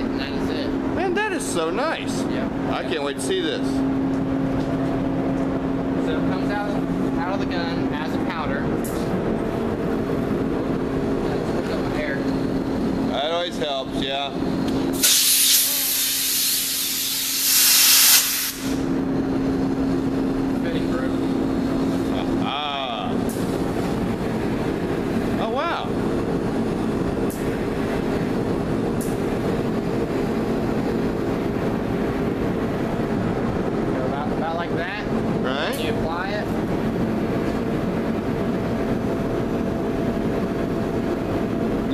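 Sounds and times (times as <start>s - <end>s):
exhaust fan humming: 0.0s - 41.9s
compressed air spray hiss: 15.0s - 18.8s.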